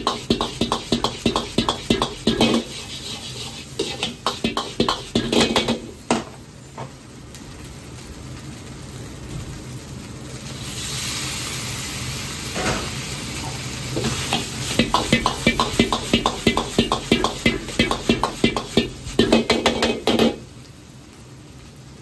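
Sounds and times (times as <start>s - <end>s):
metal ladle scraping a wok: 0.0s - 5.9s, 14.0s - 20.4s
food sizzling in a wok: 0.0s - 22.0s.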